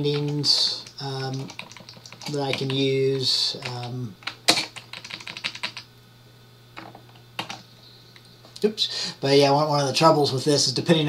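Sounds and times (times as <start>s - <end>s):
computer keyboard keystrokes: 0.0s - 2.8s, 3.6s - 5.8s, 6.8s - 7.6s.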